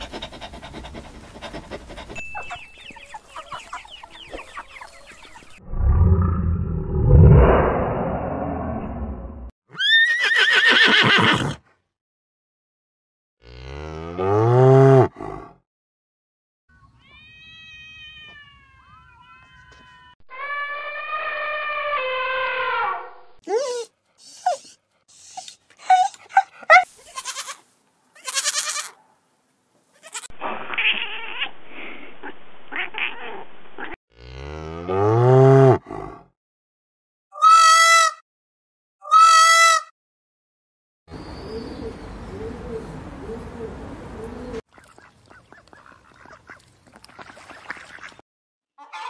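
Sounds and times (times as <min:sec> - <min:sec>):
kitten meowing: 0:17.0 - 0:20.2
animal calls: 0:48.8 - 0:49.0.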